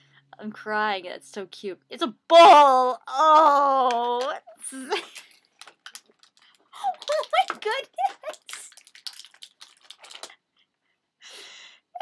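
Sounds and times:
plastic toy pieces clicking: 5.0s - 10.3s
woman murmuring and giggling: 6.8s - 8.6s.

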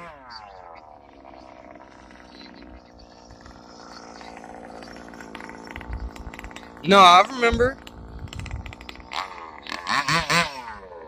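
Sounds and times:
small two-stroke engine running: 0.0s - 11.0s.

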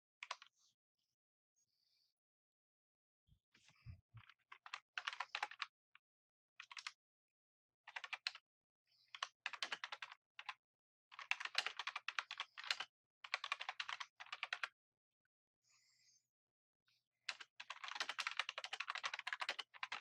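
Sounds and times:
computer keyboard typing: 4.2s - 5.7s, 6.6s - 7.0s, 7.9s - 8.4s, 9.1s - 14.7s, 17.3s - 20.0s.

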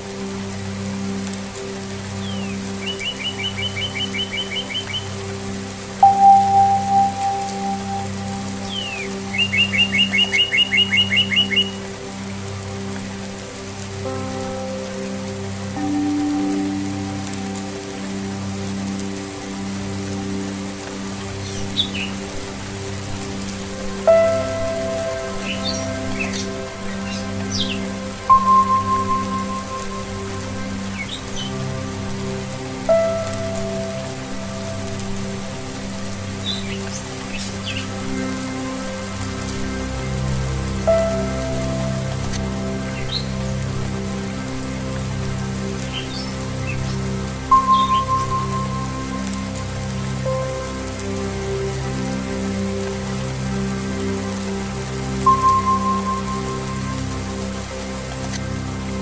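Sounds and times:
steady rain: 0.0s - 59.0s
singing bowl ringing tones: 6.0s - 8.8s
bird chirps: 6.0s - 11.8s.

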